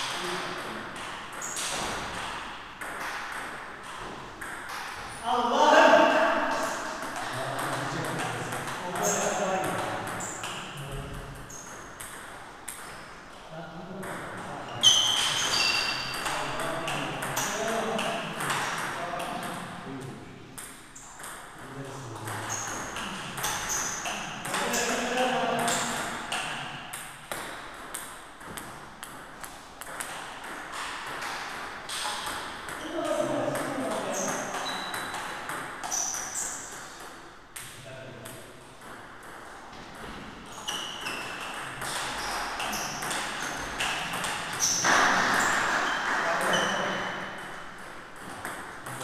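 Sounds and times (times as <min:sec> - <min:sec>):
people talking: 0:00.0 - 0:00.9, 0:05.2 - 0:10.2, 0:10.8 - 0:11.3, 0:13.4 - 0:20.2, 0:21.6 - 0:22.6, 0:24.4 - 0:26.1, 0:32.8 - 0:34.7, 0:44.9 - 0:47.2
ping pong ball on paddles and table: 0:00.0 - 0:49.0.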